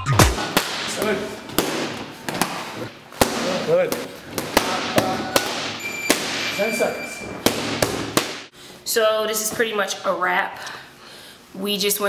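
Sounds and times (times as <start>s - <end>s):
boxing gloves slapping focus mitts: 0.3s - 6.6s, 7.4s - 8.5s.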